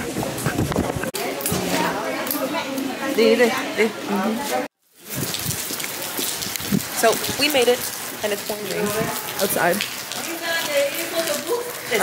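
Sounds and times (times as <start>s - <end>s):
rain falling on wet paving: 0.1s - 12.0s.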